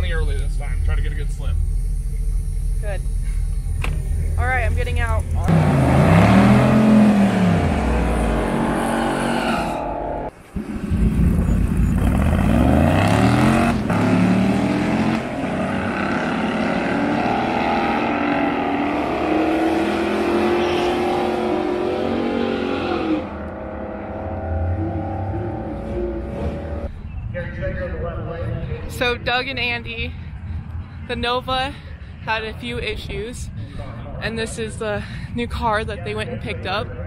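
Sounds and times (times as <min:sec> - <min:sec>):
drag racing cars revving: 0:04.9 - 0:26.9
cars accelerating hard: 0:05.4 - 0:26.9.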